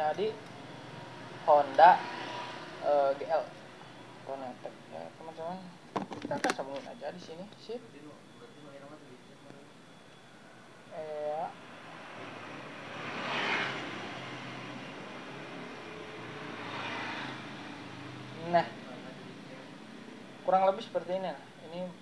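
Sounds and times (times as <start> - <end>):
vehicle passing: 0.0 - 5.6, 9.9 - 21.9.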